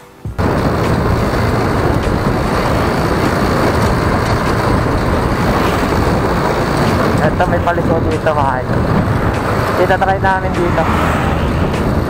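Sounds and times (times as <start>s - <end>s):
motorcycle engine and road noise: 0.2s - 12.0s
wind buffeting microphone: 0.4s - 12.0s.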